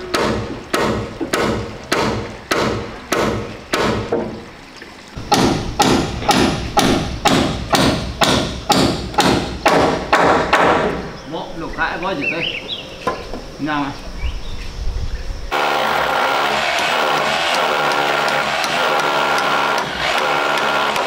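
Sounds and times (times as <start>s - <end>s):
hammer driving nails: 5.3s - 11.0s, 15.5s - 21.0s.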